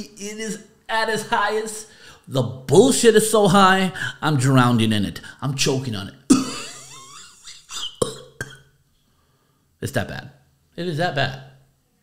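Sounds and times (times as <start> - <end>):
man making choking sounds: 6.3 - 6.8, 7.4 - 8.7
man coughing: 6.3 - 8.7.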